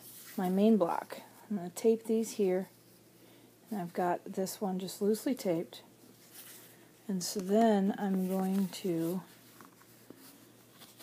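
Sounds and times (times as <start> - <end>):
fabric and paper rustling: 6.1 - 11.0.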